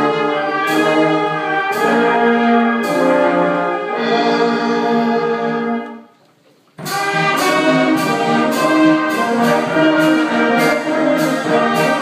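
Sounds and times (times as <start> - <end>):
brass band playing: 0.0 - 6.1, 6.8 - 12.0.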